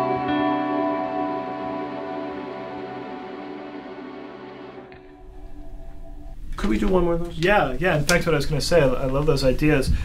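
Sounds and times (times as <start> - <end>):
amplified acoustic guitar chord: 0.0 - 6.4.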